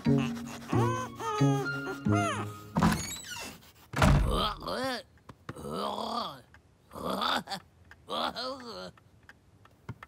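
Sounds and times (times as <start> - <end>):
high rising squeaky glides: 0.0 - 3.6
thunk: 3.9 - 4.5.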